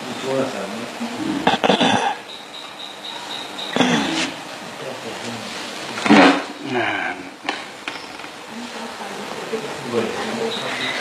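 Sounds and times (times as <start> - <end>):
thin high steady tone: 0.0 - 5.9, 6.5 - 11.0
indistinct talking: 0.0 - 11.0
steady hiss: 0.0 - 11.0.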